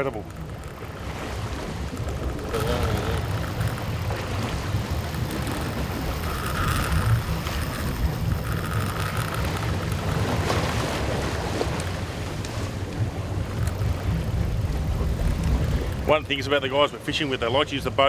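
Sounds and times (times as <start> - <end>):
wind buffeting microphone: 0.0 - 17.9
boat engine rumble: 0.0 - 18.0
water washing past hull: 0.0 - 18.0.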